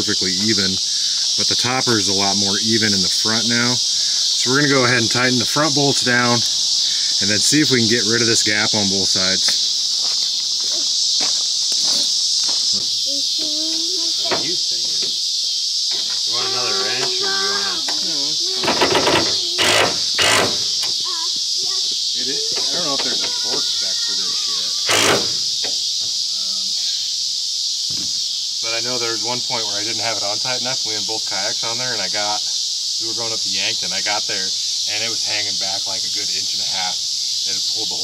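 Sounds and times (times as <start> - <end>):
insects chirping: 0.0 - 38.0.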